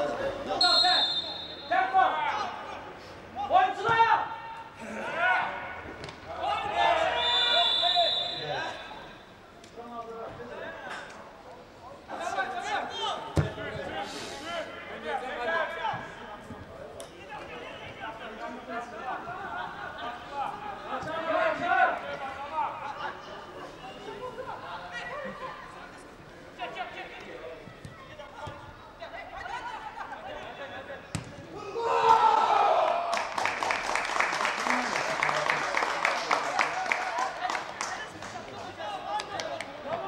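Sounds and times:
players shouting: 3.7s - 9.2s, 31.5s - 33.1s.

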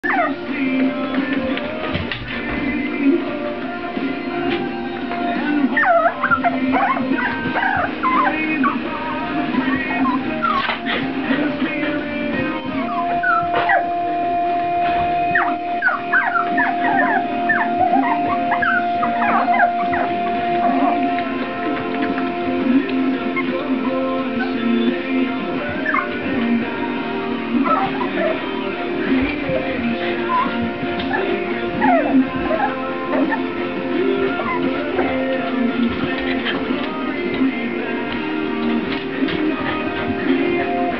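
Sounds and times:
puppies yipping and whimpering: 0.0s - 0.6s, 5.1s - 26.6s, 27.5s - 37.5s
background music: 0.0s - 40.9s.

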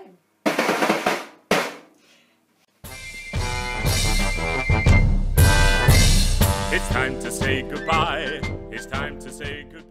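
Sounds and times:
kitchen percussion bursts: 2.8s - 9.5s
recorded music: 2.8s - 9.9s.

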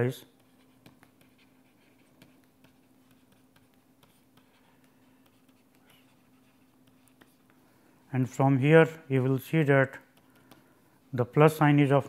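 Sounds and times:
stylus scratching on pen tablet: 0.0s - 7.6s
low steady hum: 0.0s - 12.0s.

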